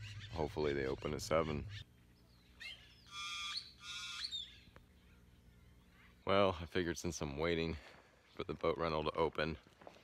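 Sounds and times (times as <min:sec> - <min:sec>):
bird squawking: 0:00.0 - 0:06.3
bird chirp: 0:00.0 - 0:06.6.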